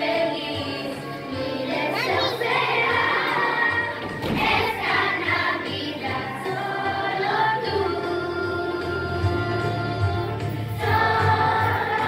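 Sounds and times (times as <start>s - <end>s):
children singing: 0.0s - 12.0s
musical accompaniment: 0.0s - 12.0s.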